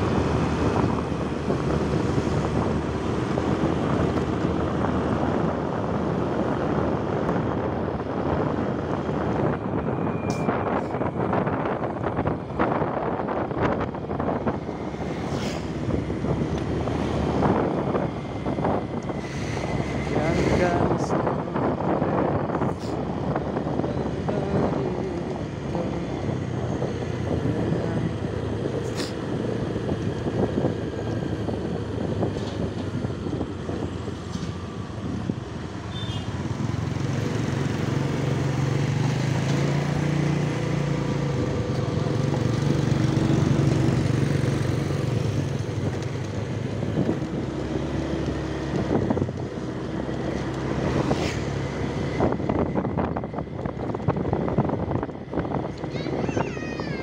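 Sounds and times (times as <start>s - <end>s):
wind and road noise: 0.0s - 57.0s
passing motorcycle engine hum: 34.5s - 56.2s.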